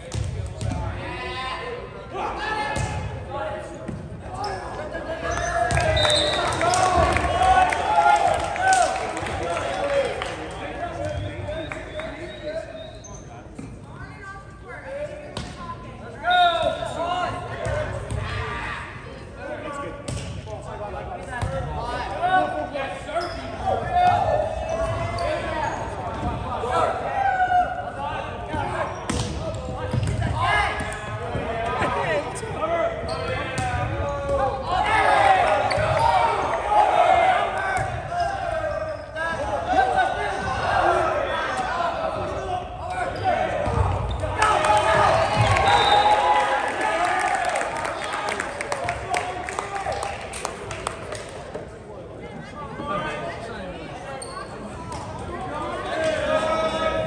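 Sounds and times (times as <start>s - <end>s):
players' voices echoing: 0.0s - 57.0s
people calling out in a hall: 4.3s - 13.1s, 16.1s - 19.6s, 21.9s - 50.2s, 52.3s - 57.0s.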